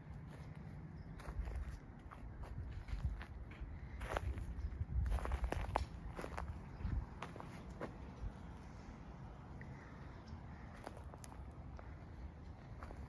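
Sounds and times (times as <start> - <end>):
footsteps on dry leaves: 0.2 - 8.0.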